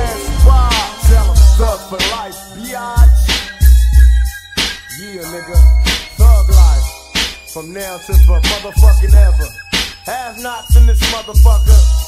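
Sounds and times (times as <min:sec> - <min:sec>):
rapped vocal: 0:00.0 - 0:03.6, 0:04.9 - 0:06.9, 0:07.6 - 0:12.0
heavy drum beat: 0:00.0 - 0:04.3, 0:05.5 - 0:07.4, 0:08.0 - 0:12.0.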